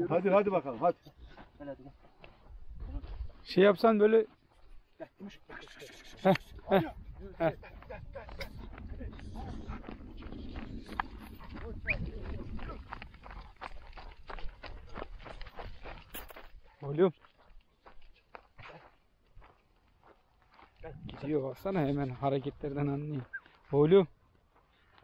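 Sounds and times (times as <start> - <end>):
footsteps crunching on stony dirt: 0.0 - 4.9, 6.1 - 25.0
low rumble: 6.5 - 16.1.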